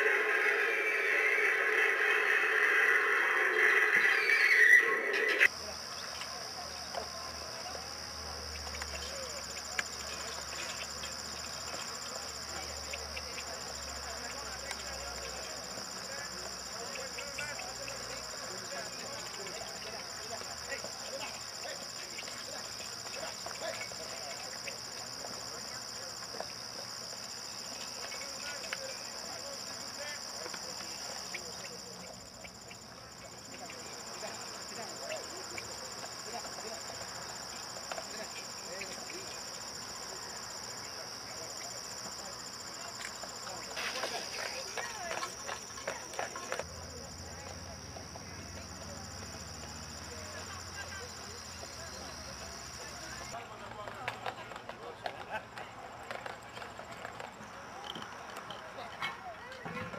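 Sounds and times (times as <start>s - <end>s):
insect chorus trilling: 0.0s - 53.4s
distant voices: 0.0s - 59.9s
horse hooves clip-clopping: 32.8s - 39.9s, 42.7s - 46.7s, 52.4s - 58.7s.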